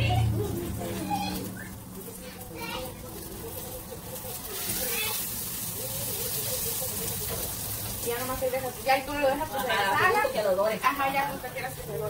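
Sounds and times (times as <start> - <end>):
faint voices: 0.0 - 12.0
tortillas sizzling in oil: 0.0 - 12.0.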